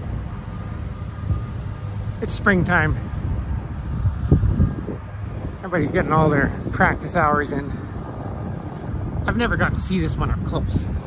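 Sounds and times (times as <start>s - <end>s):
engine rumble: 0.0s - 11.0s
faint thin whine: 0.0s - 11.0s.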